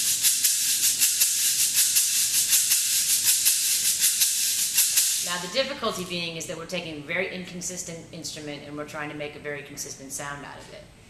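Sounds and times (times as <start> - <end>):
shaker rhythm: 0.0 - 6.9.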